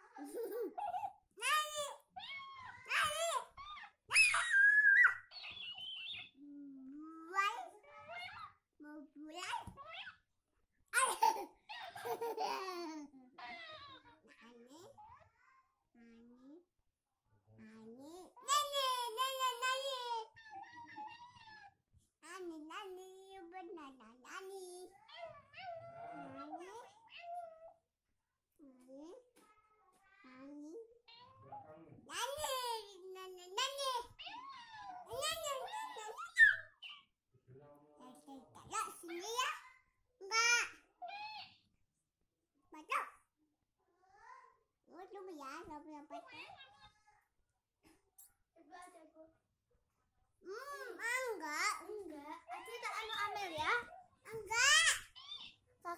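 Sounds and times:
toy squeaky voice chatter: 4.1s - 6.3s.

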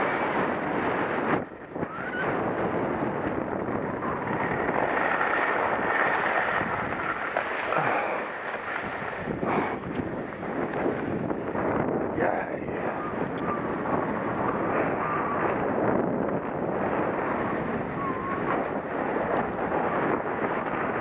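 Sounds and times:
skis running over packed snow: 0.0s - 21.0s
wind noise on microphone: 0.0s - 21.0s.

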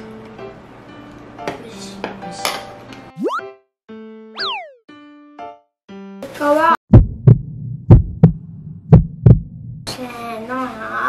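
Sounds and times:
heartbeat thumps: 6.9s - 9.9s.

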